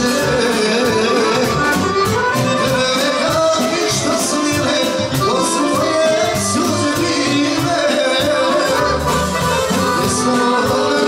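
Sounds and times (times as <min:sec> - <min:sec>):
accordion melody: 0:00.0 - 0:11.0
steady drum beat: 0:00.0 - 0:11.0.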